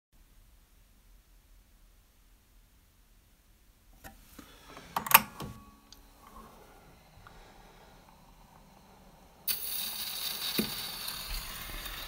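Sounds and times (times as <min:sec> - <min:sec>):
record surface hiss and crackle: 0:00.2 - 0:12.0.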